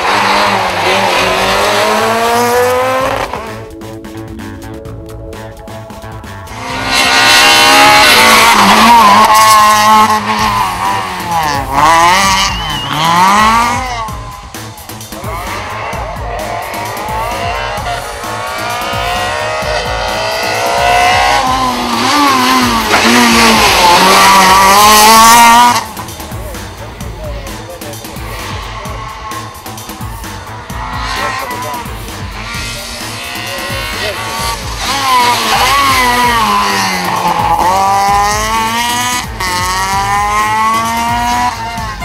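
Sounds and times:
rally car engines at full throttle: 0.0s - 42.0s.

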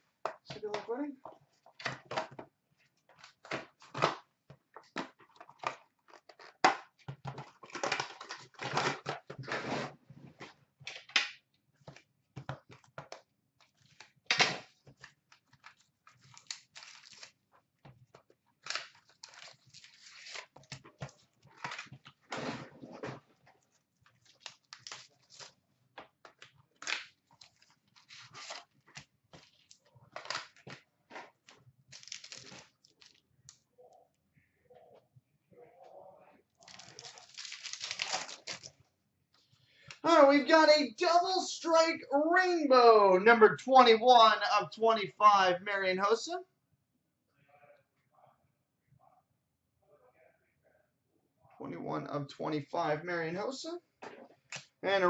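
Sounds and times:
cardboard and foil tearing: 16.2s - 17.4s, 18.6s - 20.8s, 24.2s - 25.6s, 26.8s - 28.9s, 31.9s - 33.2s, 36.6s - 38.7s.

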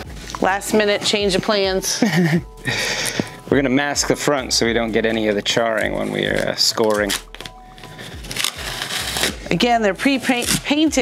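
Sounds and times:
fingers scratching masking tape: 6.0s - 9.4s, 10.0s - 11.0s.

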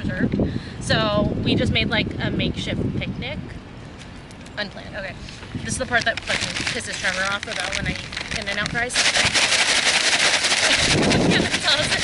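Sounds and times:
paper bag rattling: 5.7s - 12.0s.

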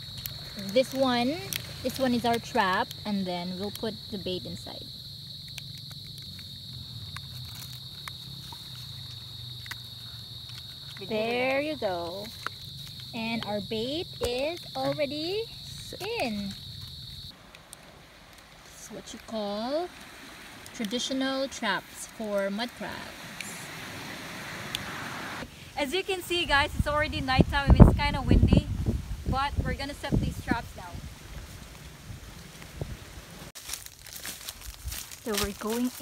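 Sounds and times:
night insects chirring: 0.0s - 36.0s
wind rushing: 26.4s - 33.5s.

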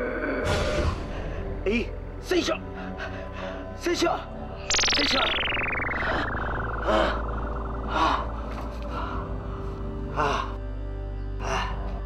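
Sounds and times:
low droning music: 0.0s - 12.0s.

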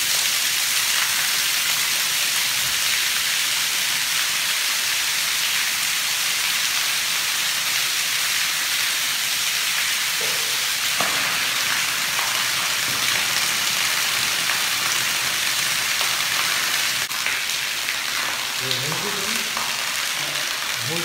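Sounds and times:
sewage gushing and splashing: 0.0s - 21.0s.

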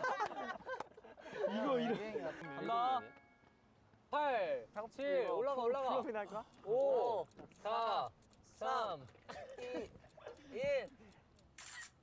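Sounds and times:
camera shutter click: 11.6s - 12.0s.

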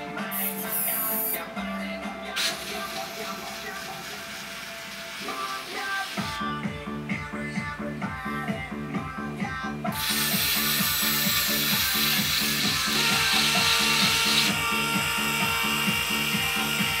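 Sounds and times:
background music with beat: 0.0s - 17.0s
small electric motors whining: 2.4s - 6.4s, 10.0s - 17.0s.

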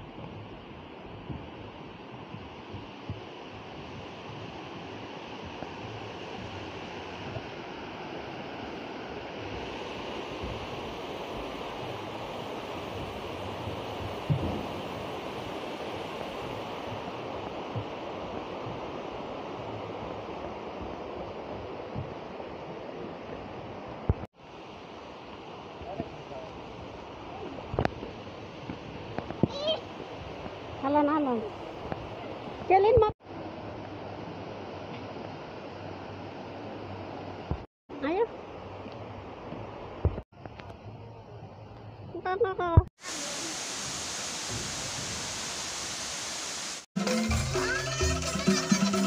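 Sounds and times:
flowing water rushing: 0.0s - 42.0s, 43.0s - 49.0s.

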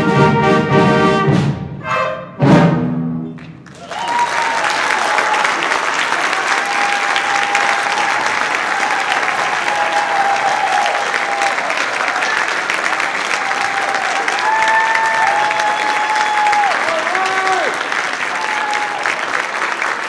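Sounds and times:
audience applauding: 3.4s - 20.0s
crowd calling out: 3.7s - 19.2s.

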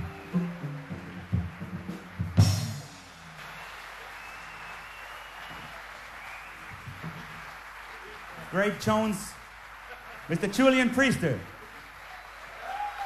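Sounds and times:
drum and cymbal hit: 0.0s - 3.4s
big band jazz: 0.0s - 3.6s.

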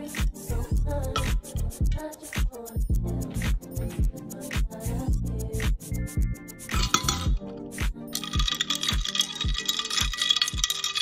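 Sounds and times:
background music with steady beat: 0.0s - 11.0s
ice cubes clinking in glass: 6.8s - 7.4s, 8.2s - 11.0s.

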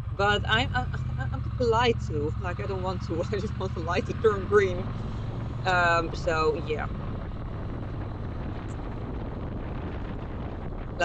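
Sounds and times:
motorcycle engine running: 0.0s - 11.0s
wind noise on microphone: 0.0s - 11.0s.

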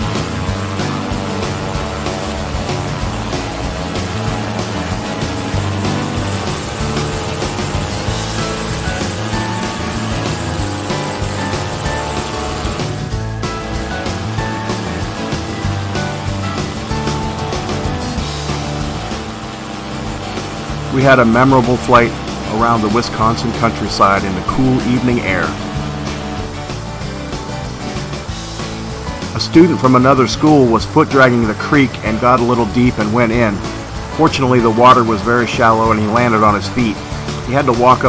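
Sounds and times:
background music: 0.0s - 38.0s
two-stroke engine running: 0.0s - 38.0s.

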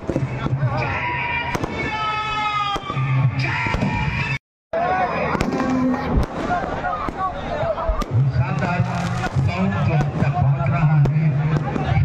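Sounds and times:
crowd voices: 0.0s - 12.0s
fireworks cracking and popping: 1.5s - 2.1s, 5.3s - 12.0s.

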